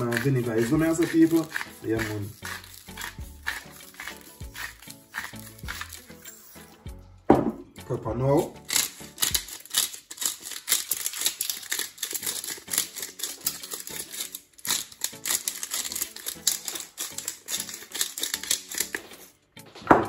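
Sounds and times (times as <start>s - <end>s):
pepper grinder grinding: 0.0s - 6.9s, 8.3s - 19.4s.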